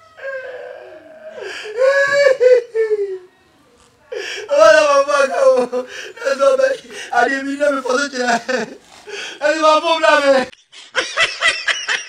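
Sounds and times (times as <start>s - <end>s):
person crying out: 0.2s - 3.2s.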